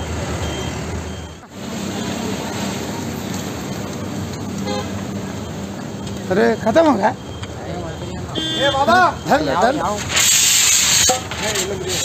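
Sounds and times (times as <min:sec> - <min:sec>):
vehicle engine hum: 0:00.0 - 0:12.0
rushing haze noise: 0:01.5 - 0:06.3, 0:09.8 - 0:12.0
horn toot: 0:08.3 - 0:11.2.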